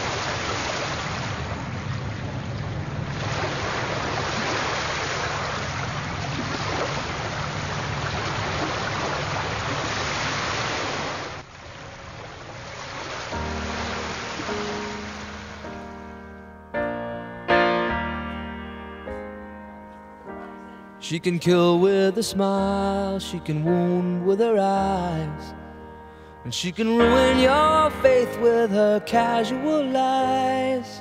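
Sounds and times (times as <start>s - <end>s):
wind rumble on microphone: 0.0s - 11.0s
sea surf washing onto beach: 0.0s - 16.0s
piano playing: 13.3s - 31.0s.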